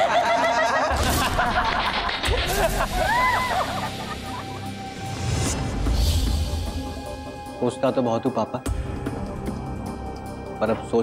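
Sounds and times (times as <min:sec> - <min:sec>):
boys laughing: 0:00.0 - 0:04.7
background music: 0:00.0 - 0:11.0.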